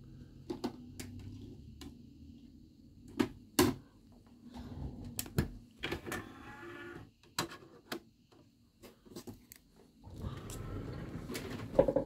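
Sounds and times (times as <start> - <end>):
disc tray motor whirring: 5.8 - 7.1.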